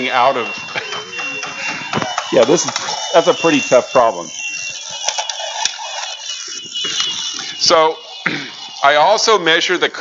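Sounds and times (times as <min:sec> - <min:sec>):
faint voices: 0:00.0 - 0:05.2
robot electronic tune: 0:00.0 - 0:10.0.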